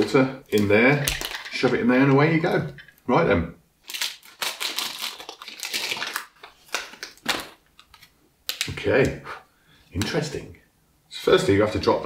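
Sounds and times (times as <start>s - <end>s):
plastic wrapper crinkling: 0.0s - 2.9s, 3.8s - 9.0s.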